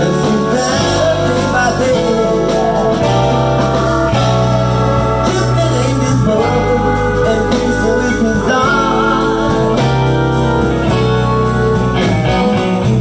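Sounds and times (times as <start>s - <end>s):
amplified blues harmonica: 0.0s - 13.0s
blues band playing: 0.0s - 13.0s.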